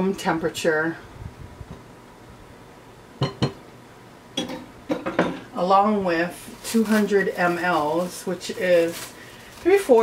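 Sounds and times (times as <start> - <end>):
clinks against glass bowl: 3.2 - 3.6.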